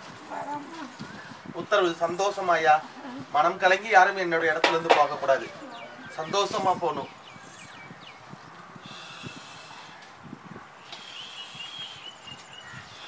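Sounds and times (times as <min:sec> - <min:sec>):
bird chirping trill: 0:05.0 - 0:09.9, 0:10.8 - 0:13.0.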